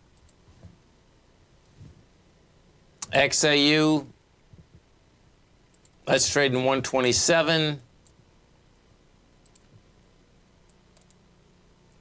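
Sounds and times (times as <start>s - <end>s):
computer mouse clicks: 0.1s - 0.7s, 5.7s - 6.0s, 8.0s - 8.2s, 9.4s - 9.8s, 10.6s - 11.2s.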